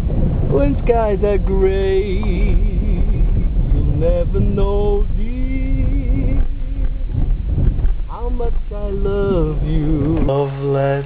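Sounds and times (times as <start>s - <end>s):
irregular knocks: 0.0s - 10.4s
car cabin rumble: 0.0s - 11.0s.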